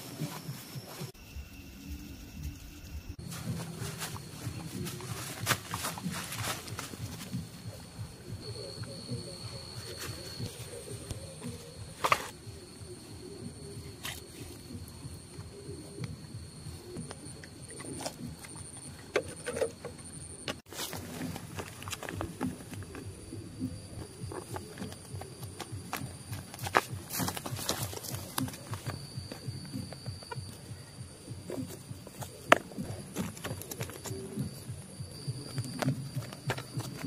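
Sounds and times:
high-pitched insect trill: 0:00.0 - 0:37.0
footsteps in dry brush: 0:03.2 - 0:07.7, 0:24.3 - 0:30.4.

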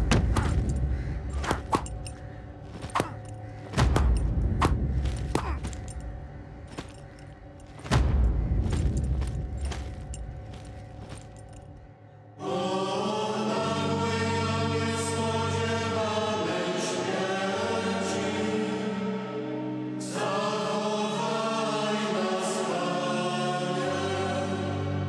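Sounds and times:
metal armour clinking: 0:00.0 - 0:11.8
choir singing long notes: 0:12.4 - 0:25.0.

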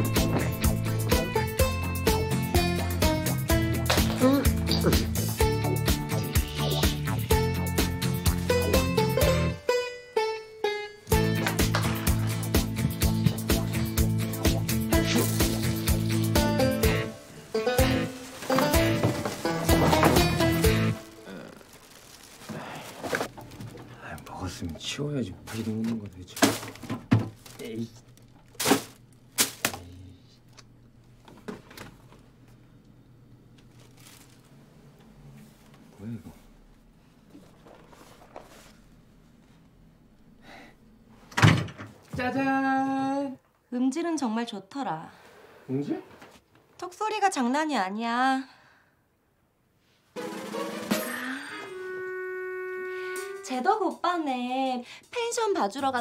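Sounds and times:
background music with steady beat: 0:00.0 - 0:21.0
door thumping open: 0:41.3 - 0:42.0
long steady held note: 0:51.0 - 0:54.0.

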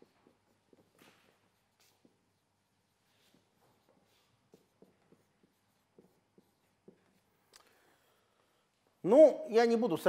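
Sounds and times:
marker writing on whiteboard: 0:00.0 - 0:07.5.

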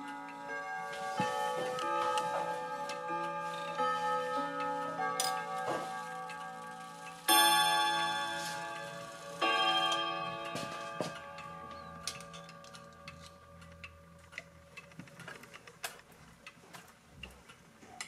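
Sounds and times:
clock gong rods ringing: 0:00.0 - 0:14.2
clock ticking: 0:00.0 - 0:18.0
small irregular clicks: 0:00.0 - 0:18.0.

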